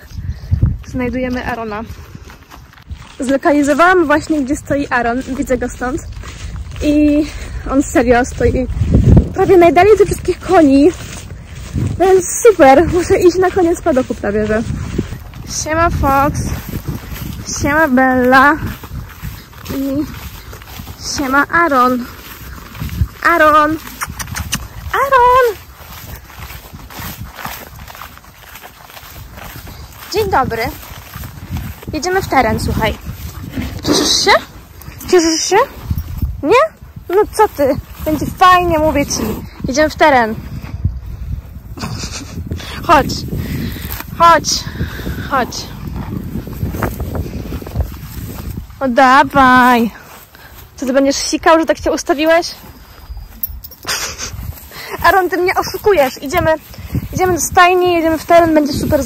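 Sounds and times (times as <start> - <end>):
footsteps swishing through grass: 0.0 - 59.0
horse snorting: 23.4 - 24.9, 33.3 - 34.6.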